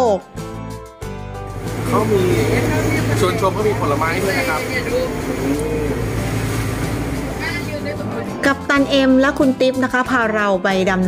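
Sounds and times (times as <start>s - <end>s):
boat engine droning: 1.5s - 8.9s.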